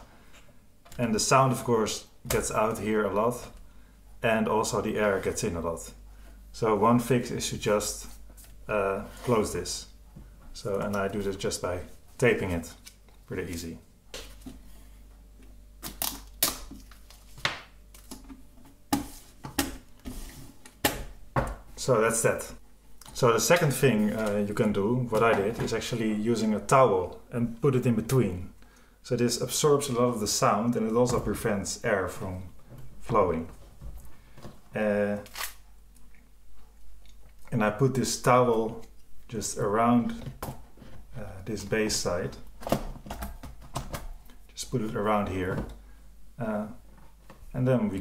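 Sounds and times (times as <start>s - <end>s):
tape rustling: 35.2s - 35.6s.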